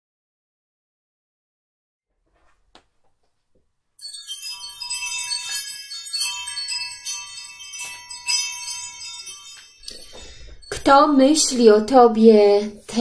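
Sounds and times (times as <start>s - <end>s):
chimes ringing: 4.0s - 12.0s
person speaking: 9.8s - 13.0s.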